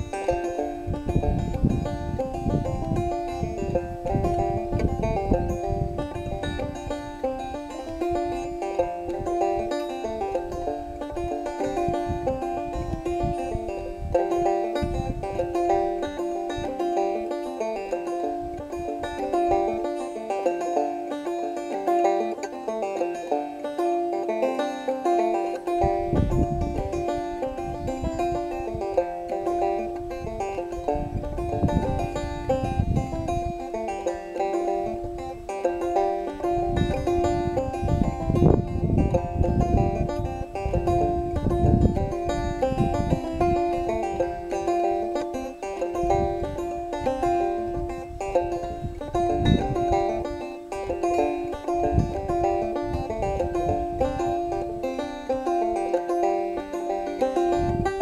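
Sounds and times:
banjo playing lively tune: 0.0s - 58.0s.

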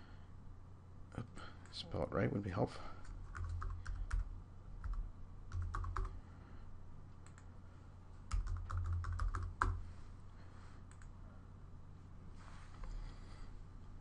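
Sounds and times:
typing on keyboard: 3.3s - 6.2s, 8.3s - 9.8s.

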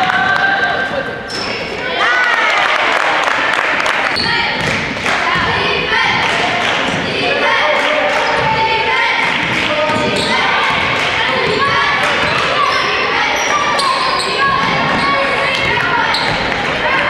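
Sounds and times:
voices calling out: 4.0s - 17.0s.

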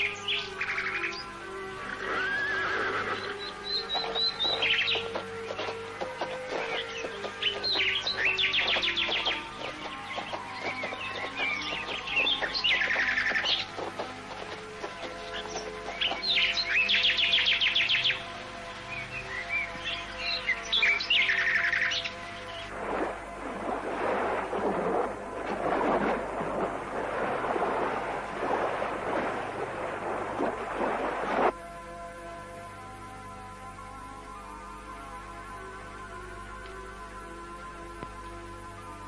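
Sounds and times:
songbird trilling: 0.0s - 18.2s, 18.9s - 22.7s
soft background music: 0.0s - 39.0s
surf rushing: 22.7s - 31.6s.

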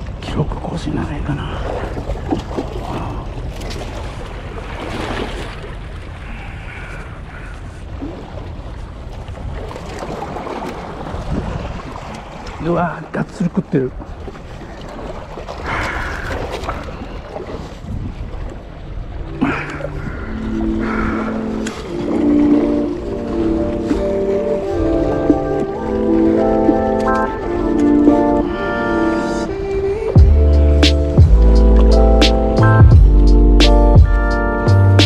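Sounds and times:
wind rumbling on microphone: 0.0s - 12.6s, 13.9s - 34.2s
waves washing against rocks: 9.4s - 28.0s.

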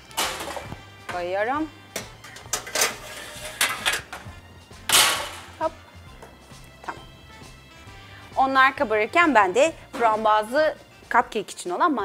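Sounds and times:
baking tray and oven rack clattering: 0.0s - 1.2s, 2.0s - 5.6s
soft background music: 0.0s - 12.0s
oven door shutting: 2.0s - 5.6s.

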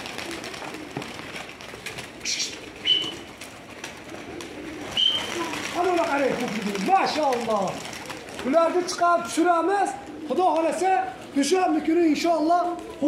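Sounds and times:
pigeon wings flapping: 0.0s - 13.0s
pigeons cooing: 0.0s - 13.0s.

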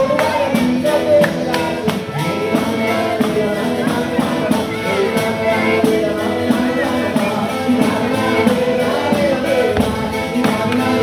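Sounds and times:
fast tambourine beat: 0.0s - 11.0s
person singing: 0.0s - 11.0s.

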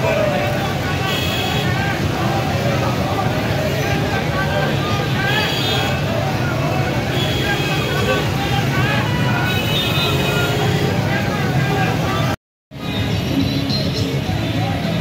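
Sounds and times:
low traffic rumble: 0.0s - 15.0s
many voices talking: 0.0s - 15.0s.

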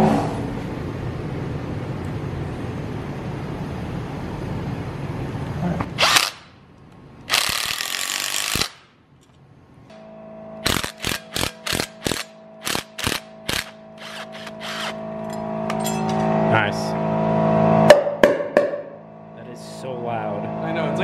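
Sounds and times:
impact gun hammering: 17.9s - 18.9s.

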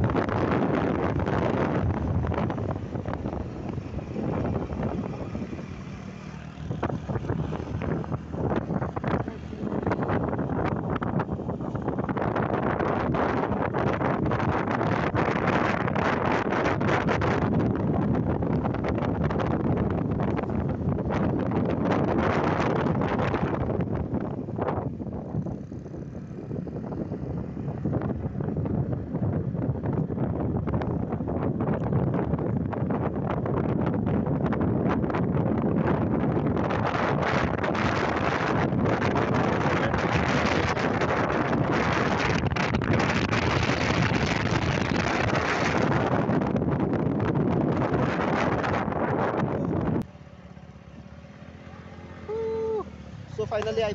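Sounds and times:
motorcycle engine: 0.0s - 53.9s
road noise: 0.0s - 53.9s
wind rushing over microphone: 0.0s - 53.9s.

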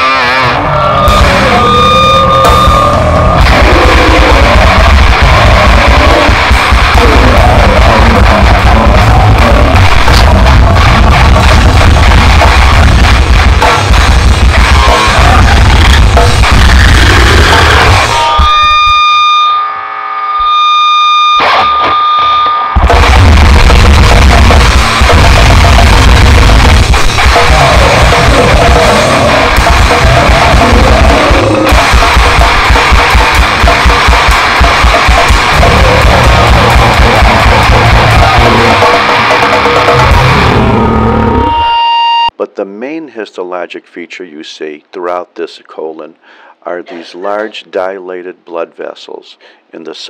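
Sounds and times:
distorted guitar: 0.0s - 42.6s
steady ringing tone: 1.1s - 3.4s
fast drumming: 1.1s - 18.6s, 22.8s - 41.1s
man speaking: 42.4s - 50.0s.

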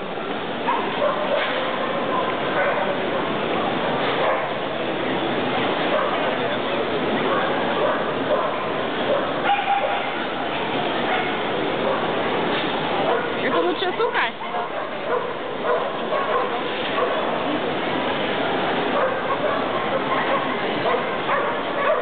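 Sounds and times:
crowd babble in echoing hall: 0.6s - 22.0s.

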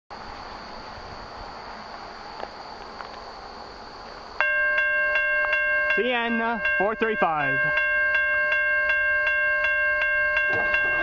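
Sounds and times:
level crossing warning bell: 4.4s - 11.0s.

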